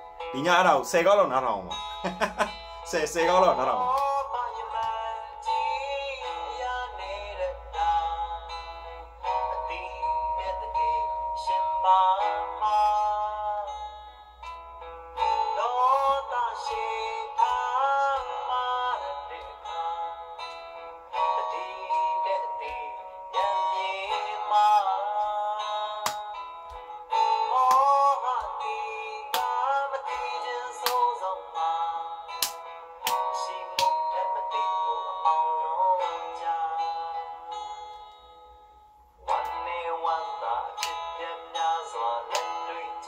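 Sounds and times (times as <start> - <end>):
pop song with solo singing: 2.9 - 13.8, 15.2 - 20.3, 21.1 - 26.3, 27.1 - 37.3, 39.3 - 43.0.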